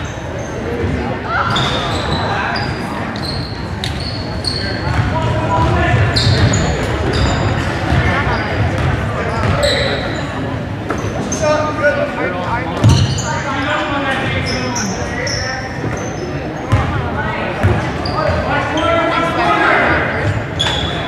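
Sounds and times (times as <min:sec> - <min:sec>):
sneakers squeaking: 0:00.0 - 0:21.0.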